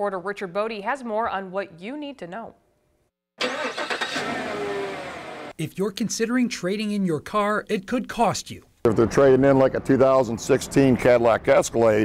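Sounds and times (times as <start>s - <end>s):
car engine running: 3.4s - 5.5s.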